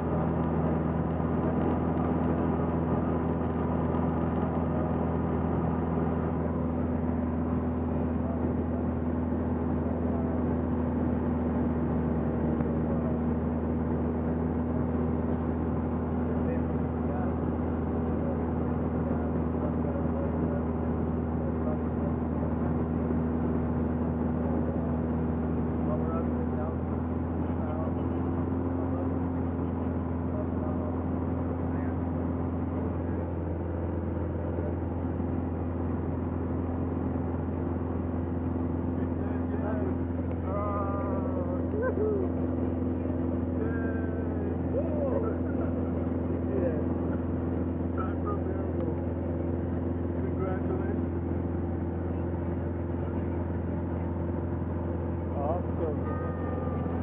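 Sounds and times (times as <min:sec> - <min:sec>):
light aircraft engine droning: 0:00.0 - 0:57.0
faint voices: 0:16.1 - 0:57.0.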